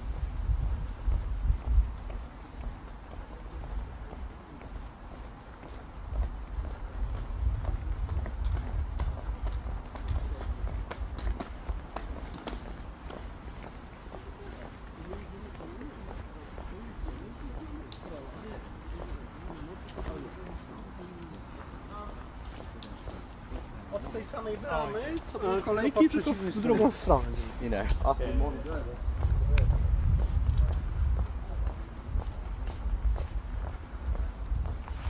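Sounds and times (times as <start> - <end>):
wind rumbling on microphone: 0.0 - 23.8, 27.2 - 35.0
footsteps on path: 0.0 - 35.0
distant people talking: 13.6 - 29.0.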